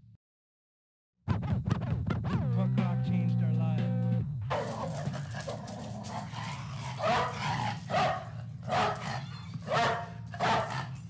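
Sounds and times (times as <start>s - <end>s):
steady low hum: 2.3s - 11.0s
dog barking: 4.5s - 11.0s.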